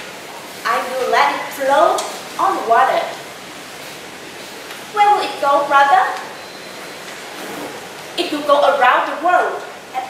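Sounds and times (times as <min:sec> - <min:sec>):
steady low hiss: 0:00.0 - 0:10.0
woman speaking: 0:00.6 - 0:03.2, 0:04.9 - 0:06.3, 0:08.2 - 0:10.0.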